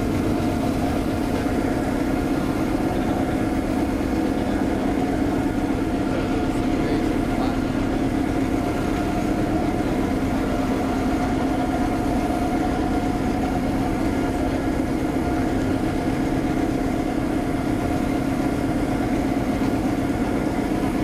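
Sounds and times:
street sweeper humming: 0:00.0 - 0:21.0.

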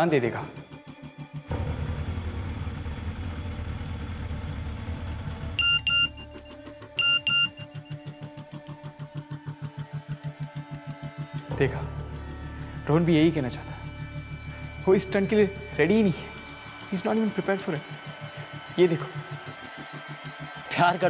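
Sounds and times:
music with pulsing beat: 0:00.2 - 0:21.0
phone message double beep: 0:05.6 - 0:06.2, 0:07.0 - 0:07.7.

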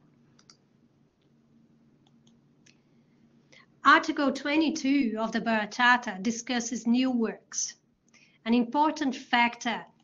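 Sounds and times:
soft clicks: 0:00.3 - 0:00.6, 0:02.0 - 0:02.8.

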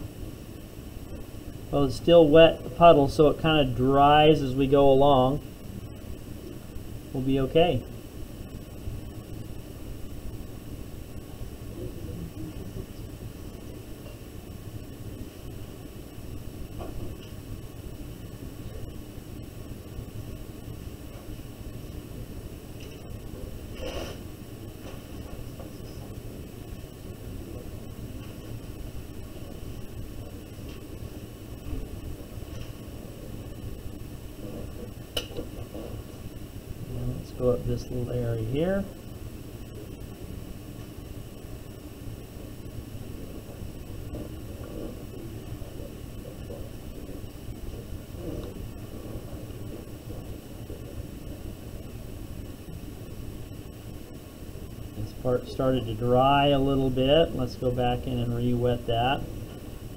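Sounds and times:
faint hiss: 0:00.0 - 0:59.9
low hum: 0:00.0 - 0:59.9.

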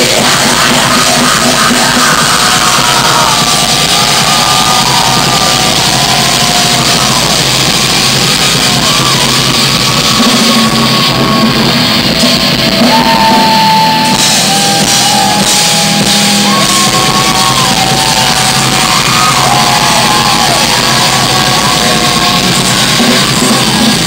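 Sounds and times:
yelled or sung vocals: 0:00.0 - 0:09.4
distorted guitar: 0:00.0 - 0:24.0
drums: 0:00.0 - 0:24.0.

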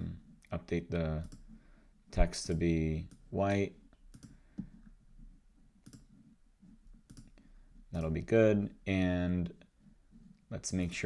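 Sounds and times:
faint computer mouse clicks: 0:04.0 - 0:04.7, 0:05.8 - 0:06.1, 0:07.1 - 0:07.4.

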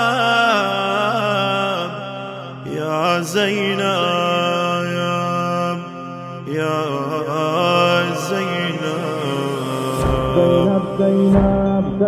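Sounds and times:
steady low drone: 0:08.9 - 0:12.0.

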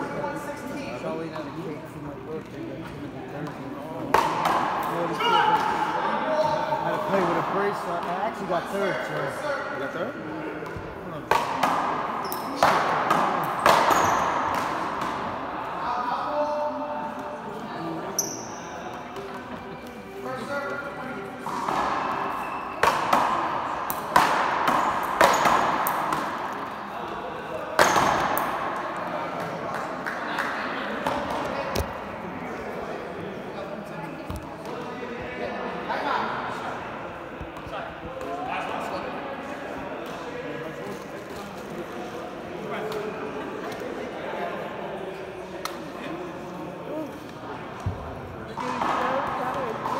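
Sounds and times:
people talking: 0:00.0 - 0:21.8
paddleball hits echoing: 0:03.4 - 0:05.9, 0:10.6 - 0:15.3, 0:21.4 - 0:26.5, 0:27.8 - 0:29.5.

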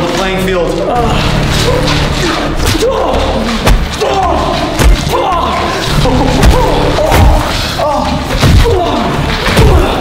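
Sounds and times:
fight scuffle: 0:00.0 - 0:10.0.

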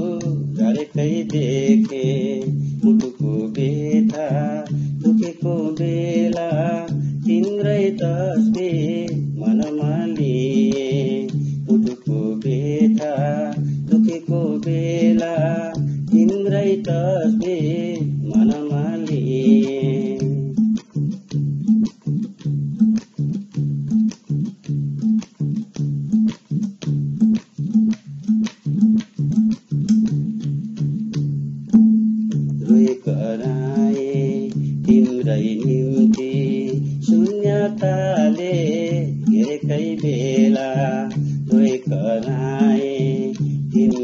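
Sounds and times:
man singing folk melody: 0:00.0 - 0:22.0, 0:32.2 - 0:44.0
repeating bass pattern: 0:00.0 - 0:44.0
strummed string instrument: 0:00.0 - 0:44.0.

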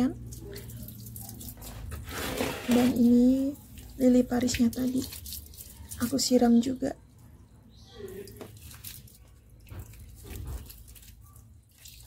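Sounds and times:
hose water splashing on plants: 0:00.0 - 0:06.9, 0:08.0 - 0:12.0.

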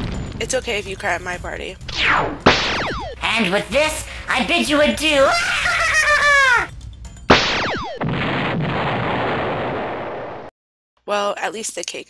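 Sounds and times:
explosion blast: 0:00.0 - 0:00.5, 0:07.3 - 0:10.5.

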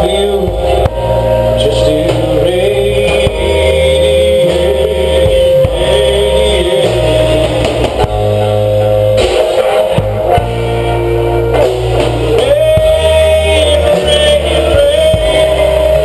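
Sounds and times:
bass guitar line: 0:00.0 - 0:16.0
drums: 0:00.0 - 0:16.0
electric guitars: 0:00.0 - 0:16.0.

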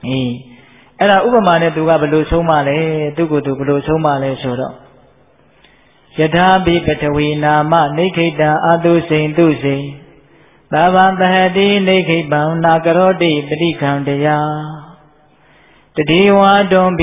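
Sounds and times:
man chanting: 0:00.0 - 0:05.1, 0:06.1 - 0:15.2, 0:15.9 - 0:17.0.

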